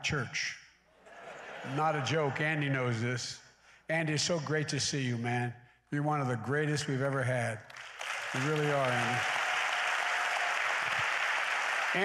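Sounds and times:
congregation applauding: 0:07.0 - 0:12.0.

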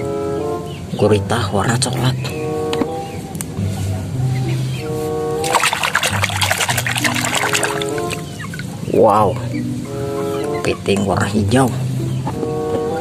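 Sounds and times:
light background music: 0:00.0 - 0:13.0
water splashing in a basin: 0:05.4 - 0:08.7.

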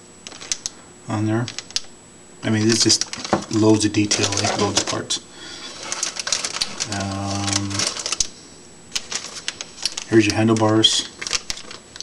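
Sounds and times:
plastic bags crinkling: 0:02.5 - 0:08.4, 0:09.0 - 0:12.0
plastic parts rattling: 0:02.6 - 0:08.3, 0:09.0 - 0:12.0.

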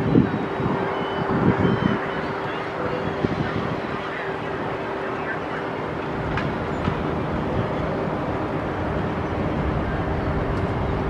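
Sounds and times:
distant voices: 0:00.0 - 0:11.0
ride machinery rumbling: 0:00.0 - 0:11.0.

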